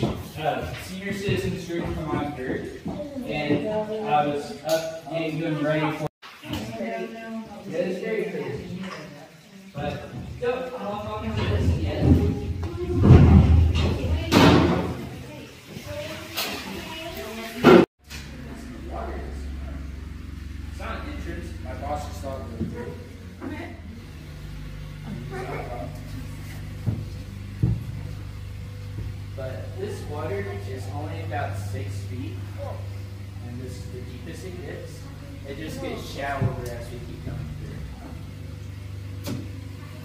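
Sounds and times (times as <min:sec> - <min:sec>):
steady low hum: 0:18.0 - 0:40.0.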